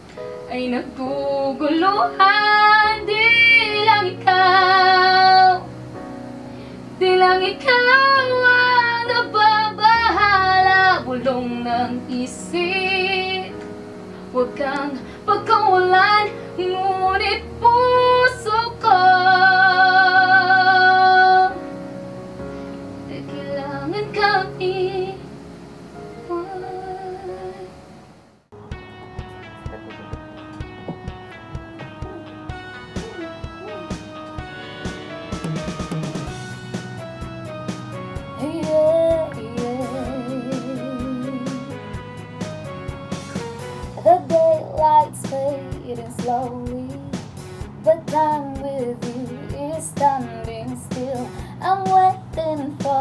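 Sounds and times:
quiet low accompaniment: 0:14.3 - 0:41.7
light musical accompaniment: 0:28.6 - 0:53.0
woman humming: 0:31.7 - 0:36.5
woman singing long notes: 0:38.4 - 0:41.7.

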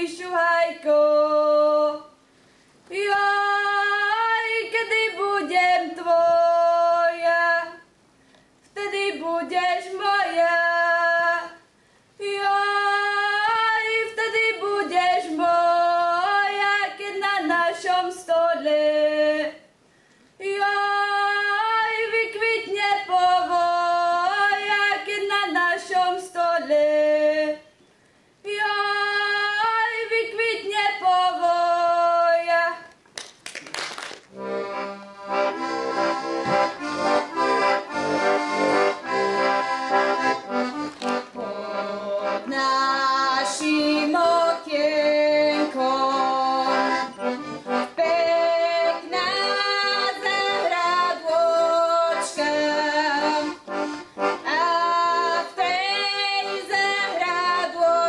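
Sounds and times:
girl singing folk song: 0:00.0 - 0:02.2, 0:02.8 - 0:07.9, 0:08.7 - 0:19.8, 0:20.4 - 0:27.8, 0:28.4 - 0:33.0, 0:41.2 - 0:58.0
button accordion folk tune: 0:34.3 - 0:58.0
knock: 0:36.4 - 0:36.6.

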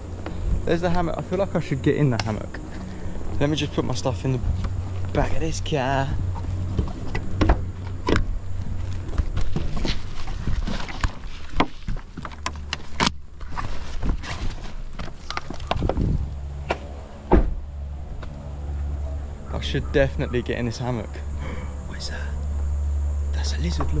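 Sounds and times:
low rumble: 0:14.6 - 0:23.4
loud thump: 0:16.6 - 0:17.7.

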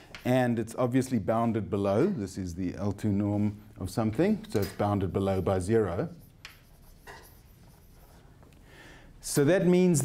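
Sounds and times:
chalk scratching on blackboard: 0:05.2 - 0:08.3.

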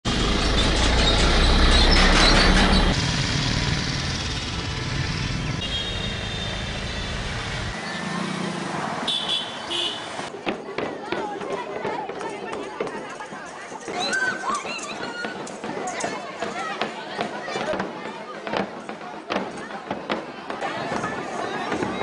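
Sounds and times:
street traffic hum: 0:00.0 - 0:13.9
vehicle passing: 0:00.1 - 0:10.3
horn beeps: 0:05.6 - 0:07.0, 0:09.1 - 0:10.1.

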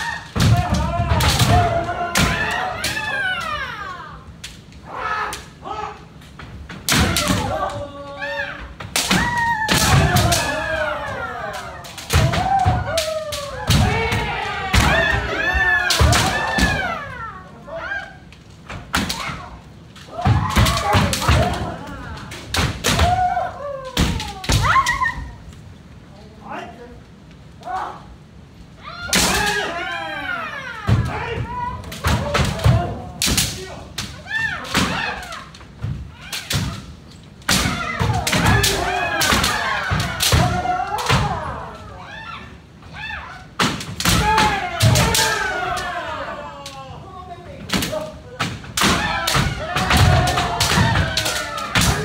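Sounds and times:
kiai shouts: 0:28.8 - 0:35.5.

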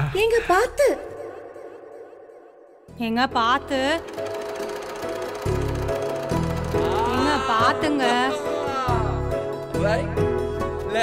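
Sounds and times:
soft background music: 0:00.0 - 0:11.0
sewing machine clattering: 0:03.7 - 0:08.3.

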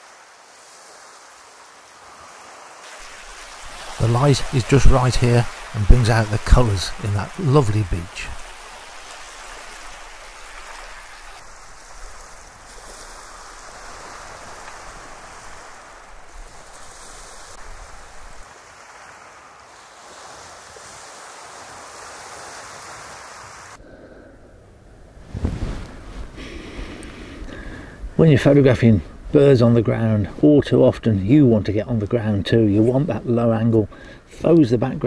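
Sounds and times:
waves washing over pebbles: 0:00.0 - 0:23.8
wind gusts on microphone: 0:00.0 - 0:30.6.

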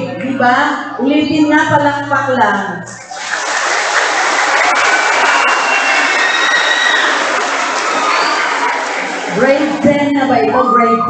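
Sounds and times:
crowd applause: 0:03.0 - 0:09.9.

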